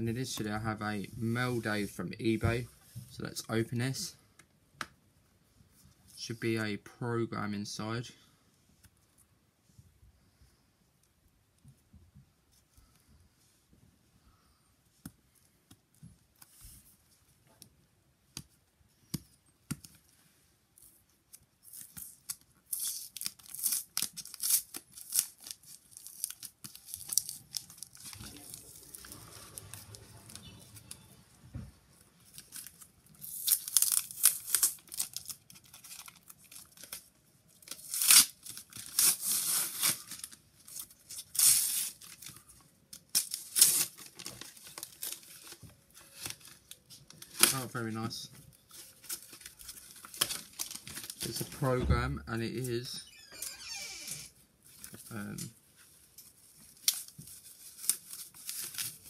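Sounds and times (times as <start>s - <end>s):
package wrapping tearing: 21.6s - 31.0s, 32.3s - 47.7s, 48.7s - 51.5s, 56.6s - 59.0s.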